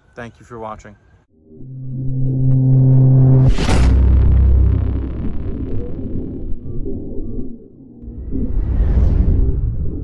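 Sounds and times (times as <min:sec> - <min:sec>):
low rumbling synthesized drone: 0:01.3 - 0:10.0.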